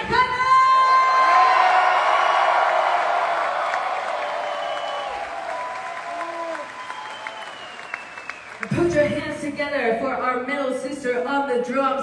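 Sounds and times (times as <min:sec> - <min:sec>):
crowd cheering and clapping: 0:00.5 - 0:09.2
high-pitched screams and whoops: 0:00.7 - 0:08.5.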